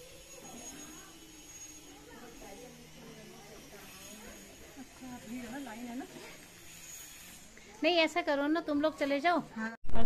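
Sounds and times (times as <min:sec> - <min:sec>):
thin high-pitched tone: 0:00.0 - 0:05.6
faint distant voices: 0:00.0 - 0:09.8
open-air background noise: 0:00.0 - 0:10.0.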